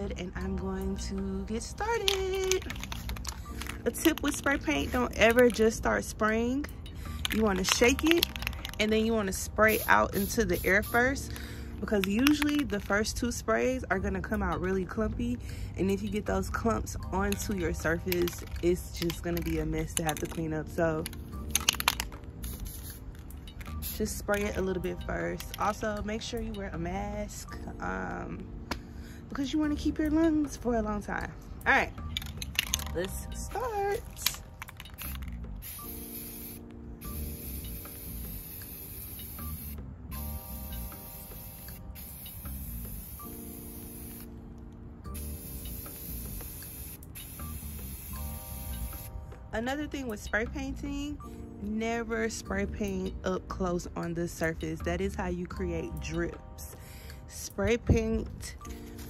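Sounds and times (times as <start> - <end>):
spray can mixing ball clicking: 2.0 - 5.8, 7.2 - 11.2, 11.9 - 13.0, 17.3 - 24.6, 32.1 - 33.2, 34.0 - 44.3, 45.2 - 49.1
spray paint hiss: 7.1 - 11.2, 21.1 - 24.6, 34.2 - 44.4, 45.1 - 49.2.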